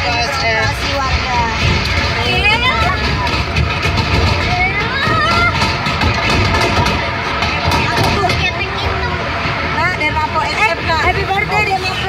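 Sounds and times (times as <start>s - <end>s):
passengers calling and chattering: 0.0s - 12.0s
train rumbling: 0.0s - 12.0s.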